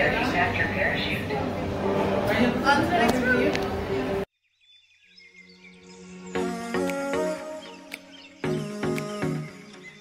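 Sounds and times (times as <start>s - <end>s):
high chirping sounds: 4.5s - 10.0s.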